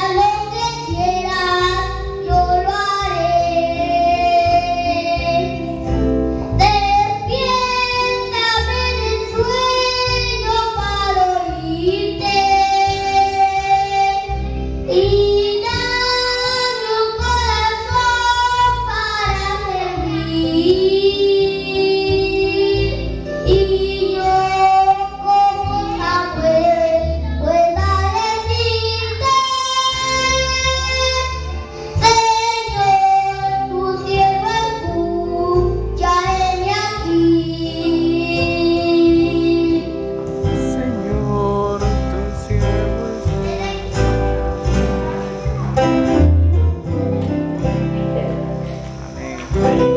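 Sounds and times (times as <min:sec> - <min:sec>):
boy singing into a microphone: 0:00.0 - 0:06.0, 0:06.6 - 0:44.2
musical accompaniment with bass notes: 0:00.0 - 0:49.9.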